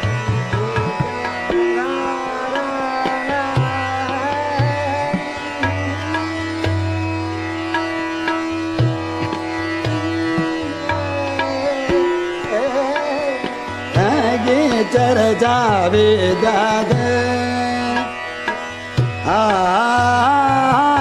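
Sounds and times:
harmonium: 0.0 - 21.0
tabla drumming: 0.0 - 21.0
tanpura drone: 0.0 - 21.0
person singing ornamented phrases: 0.5 - 6.8, 9.9 - 18.1.

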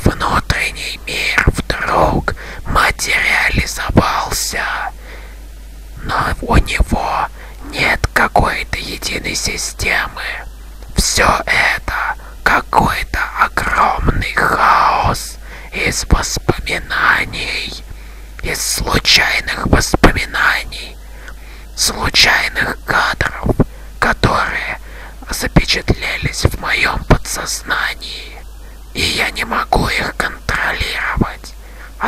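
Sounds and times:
person whispering: 0.0 - 5.0, 6.0 - 32.0.

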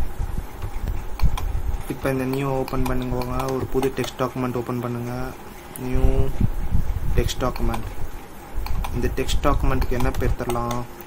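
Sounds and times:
typing on computer keyboard: 2.3 - 4.3, 9.8 - 11.0.

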